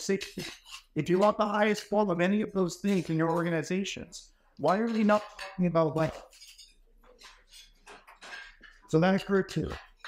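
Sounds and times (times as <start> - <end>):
tableware clinking: 4.6 - 10.0.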